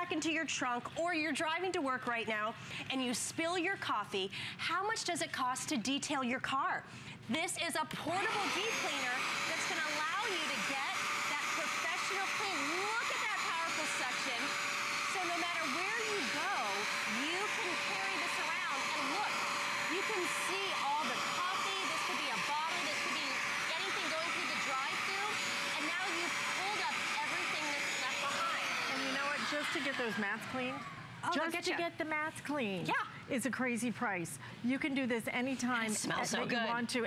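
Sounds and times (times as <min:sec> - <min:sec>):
carpet cleaner motor whine: 0:08.0 - 0:30.5
rushing suction: 0:08.1 - 0:30.0.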